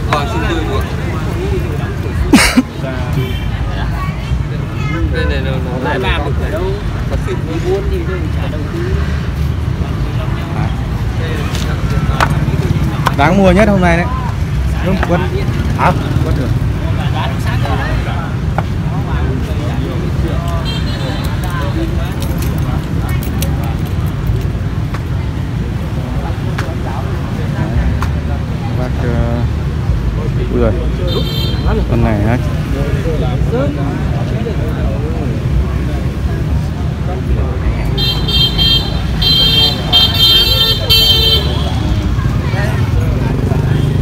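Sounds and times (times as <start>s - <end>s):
faint voices talking: 0.0s - 44.0s
low rumble of traffic: 0.0s - 44.0s.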